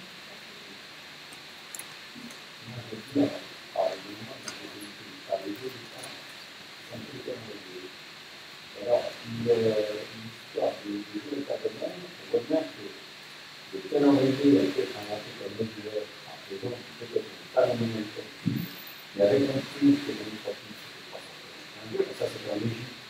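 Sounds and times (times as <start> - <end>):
man speaking into a microphone: 2.6 - 6.3, 6.9 - 7.9, 8.8 - 13.0, 13.7 - 18.6, 19.2 - 23.0.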